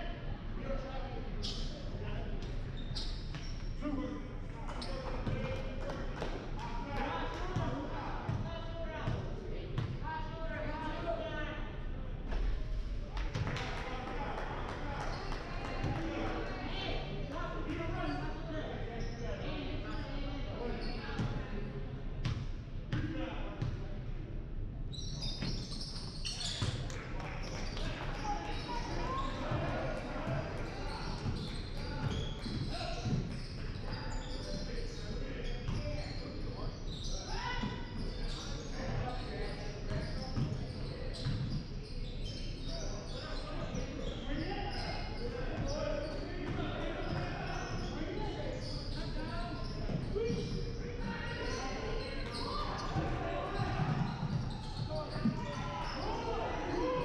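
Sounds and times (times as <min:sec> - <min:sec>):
echoing chatter and calls: 0:25.0 - 0:57.0.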